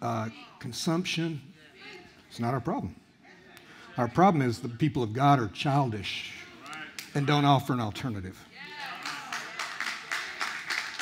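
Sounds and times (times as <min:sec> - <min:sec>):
people applauding: 0:08.6 - 0:11.0.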